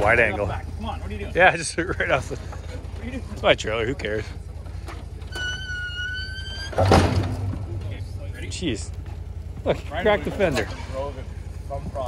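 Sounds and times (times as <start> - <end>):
high steady squeal: 5.2 - 8.7
quad wheels thudding onto ground: 6.6 - 7.9.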